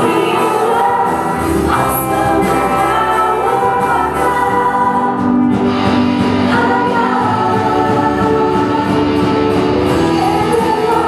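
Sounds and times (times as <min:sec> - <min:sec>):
choir singing gospel song: 0:00.0 - 0:11.0
musical accompaniment: 0:00.0 - 0:11.0.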